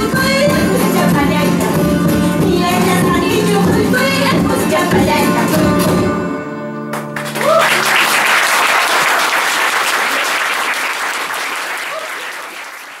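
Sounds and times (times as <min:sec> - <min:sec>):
audience applauding: 0:06.9 - 0:13.0.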